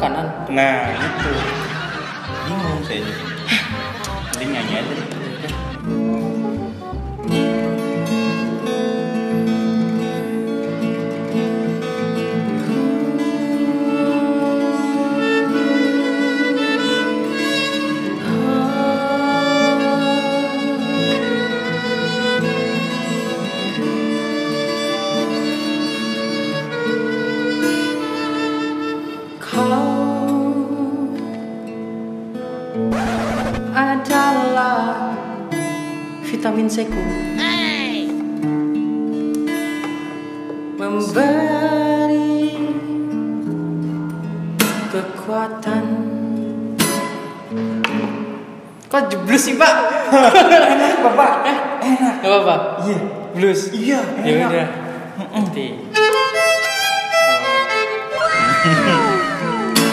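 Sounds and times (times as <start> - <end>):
acoustic guitar: 0.0 - 59.9
gliding melody line: 2.2 - 7.7
violin holding long notes: 2.3 - 7.6, 56.0 - 59.9.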